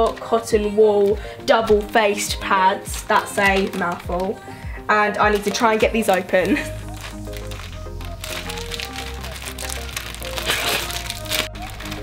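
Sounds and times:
background music with bass line: 0.0s - 12.0s
plastic wrapper crinkling: 0.0s - 12.0s.

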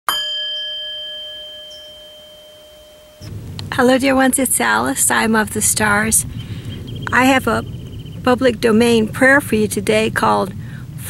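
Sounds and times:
bell ringing: 0.1s - 3.9s.

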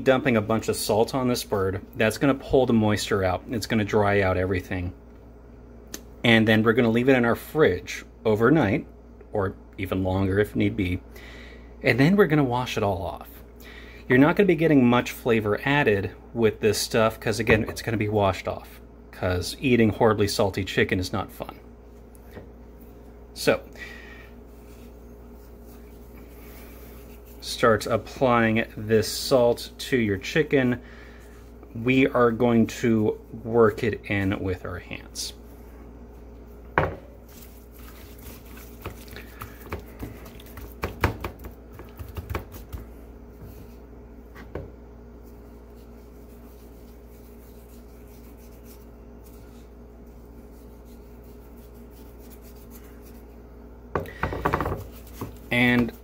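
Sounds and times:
steady low hum: 0.0s - 56.0s
hands rubbing salt into skin: 24.5s - 27.6s, 37.3s - 43.8s, 45.2s - 53.4s.

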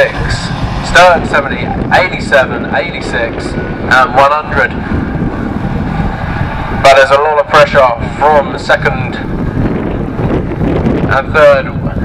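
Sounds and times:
racing car engines rumbling: 0.0s - 12.0s.

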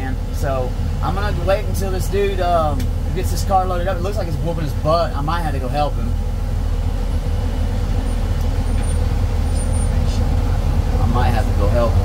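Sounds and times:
highway traffic passing: 0.0s - 12.0s
truck engine idling: 0.0s - 12.0s.

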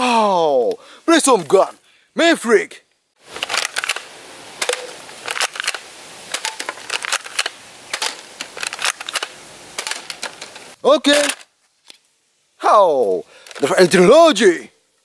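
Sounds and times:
faint hiss: 0.0s - 15.0s.

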